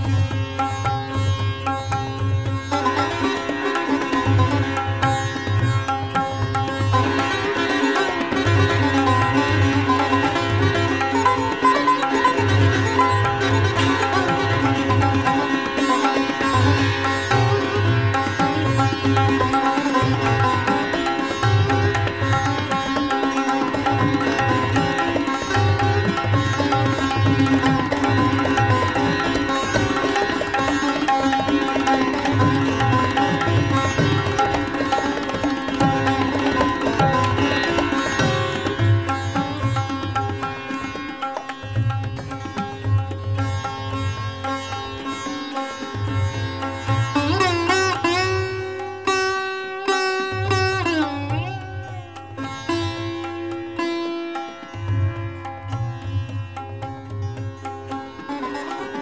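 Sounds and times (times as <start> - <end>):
sitar playing fast: 0.0 - 59.0.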